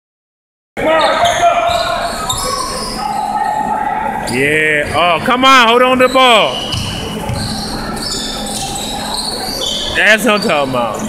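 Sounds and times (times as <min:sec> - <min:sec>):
spectators voices and shouts: 0:00.8 - 0:10.6.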